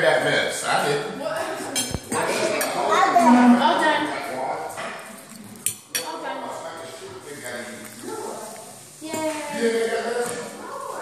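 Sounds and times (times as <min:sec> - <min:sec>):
tableware clinking: 0:01.7 - 0:02.9, 0:04.7 - 0:06.2.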